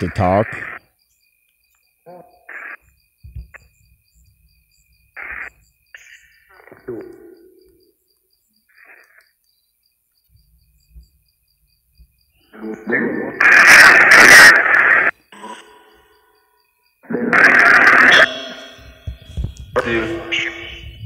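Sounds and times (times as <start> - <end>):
choppy voice-like radio fragments: 0.0 - 0.9, 2.1 - 2.8, 5.2 - 7.7, 12.4 - 16.1, 17.0 - 21.0
regular high chirping: 18.2 - 21.0.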